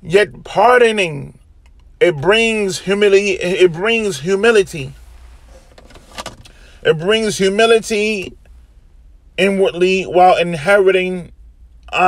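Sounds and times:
man talking: 0.0 - 1.3, 2.0 - 5.0, 6.8 - 8.4, 9.4 - 11.3
faint background noise: 0.0 - 12.0
soft clicks: 1.6 - 1.9.

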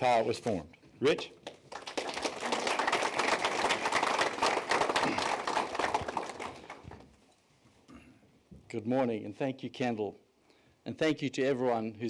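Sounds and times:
audience applauding: 1.5 - 7.0.

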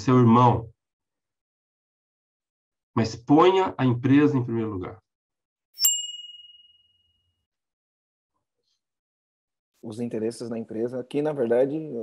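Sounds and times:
bell-like ding: 5.8 - 7.1.

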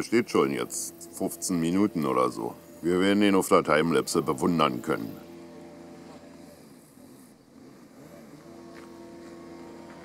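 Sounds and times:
faint tractor engine running: 0.0 - 10.0.

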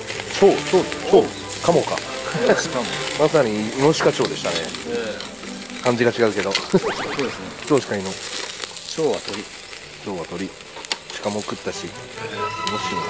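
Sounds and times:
meat sizzling on a grill: 0.0 - 13.0
sliding pitched sounds: 3.1 - 9.2.

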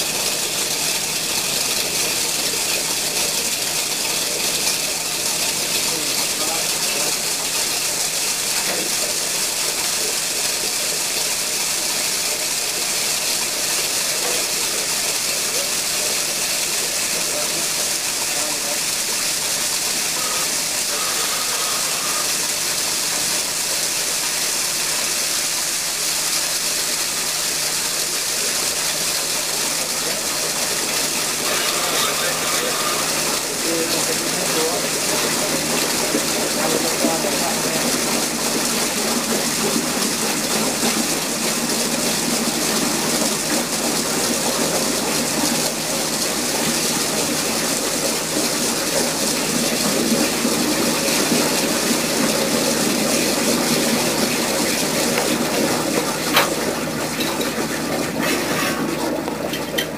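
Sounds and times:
drilling fluid rushing and spraying: 0.0 - 59.9
machine running: 17.1 - 24.0, 28.4 - 40.3.

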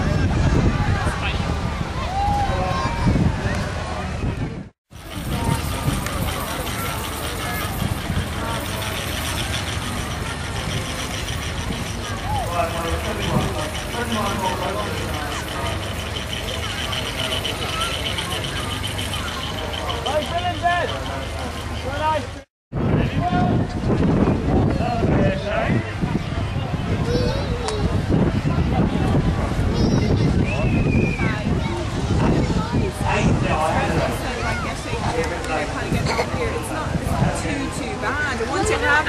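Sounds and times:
people talking: 0.0 - 39.0
miniature steam engine running: 4.9 - 22.4.

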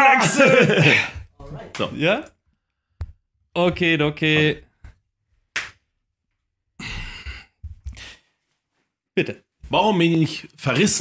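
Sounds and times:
man sighing: 6.8 - 8.2.

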